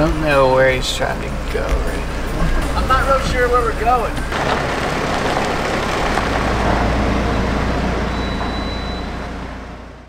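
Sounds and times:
van road noise rumble: 0.0s - 10.0s.

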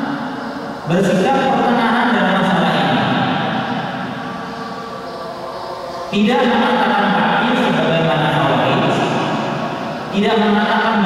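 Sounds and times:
steady background hiss: 0.0s - 11.0s
man lecturing: 0.9s - 3.3s, 6.1s - 9.2s, 10.1s - 11.0s.

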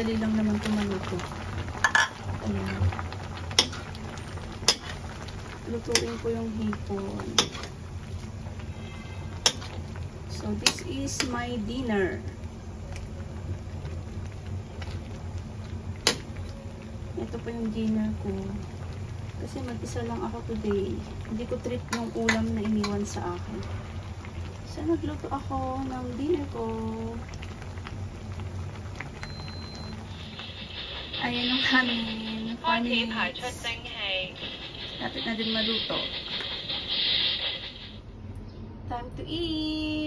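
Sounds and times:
broth bubbling: 0.0s - 32.1s
low background hum: 0.0s - 40.0s.

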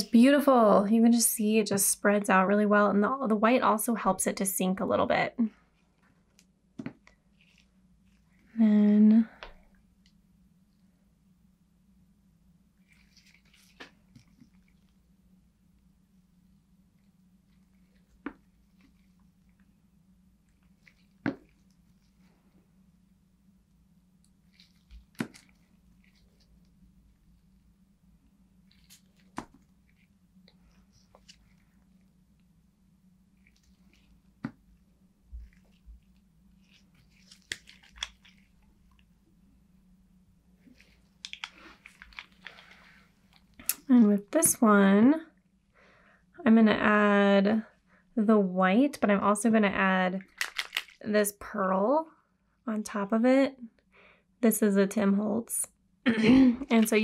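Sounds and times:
faint low hum: 0.0s - 57.0s
rustling and clicking: 35.4s - 39.1s, 40.7s - 43.8s, 50.2s - 51.0s.

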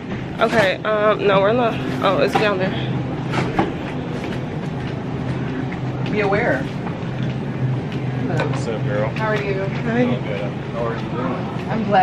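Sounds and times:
refrigerated display cases humming: 0.0s - 12.0s.

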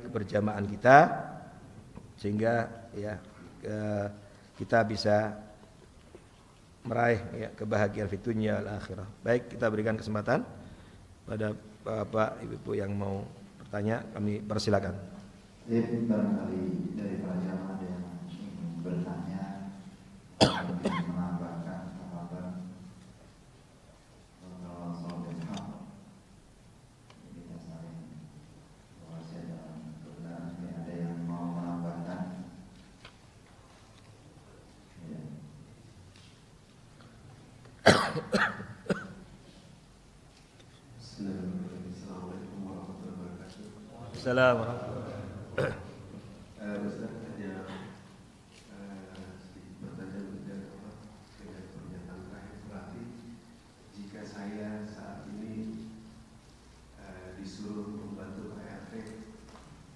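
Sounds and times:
man coughing: 20.4s - 21.2s, 37.8s - 39.2s, 45.5s - 46.0s.

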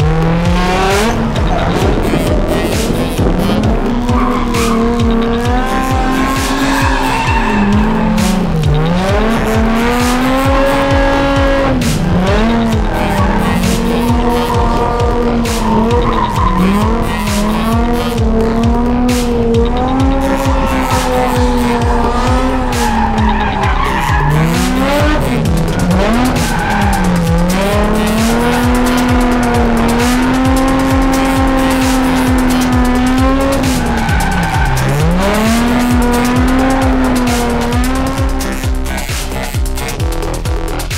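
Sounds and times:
tyres squealing: 0.0s - 40.1s
car engine at high revs: 0.0s - 40.9s.

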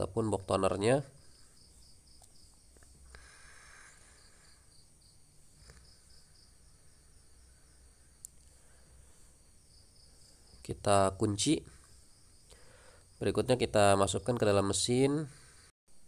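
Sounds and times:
faint high-pitched chirping: 0.0s - 15.1s.

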